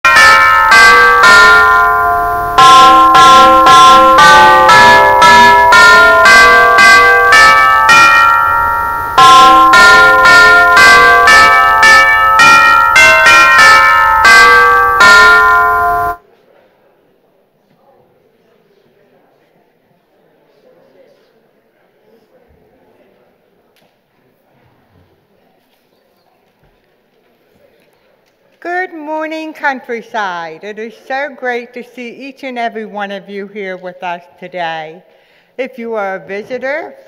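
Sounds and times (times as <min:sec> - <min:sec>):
tuned bells playing a melody: 0:00.1 - 0:16.2.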